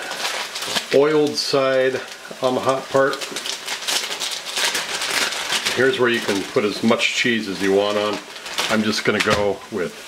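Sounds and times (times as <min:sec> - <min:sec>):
bread sizzling in oil: 0:00.0 - 0:10.0.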